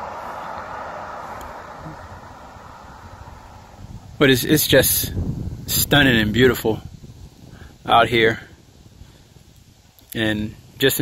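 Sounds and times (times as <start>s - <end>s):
vehicle driving past: 0.0s - 4.4s.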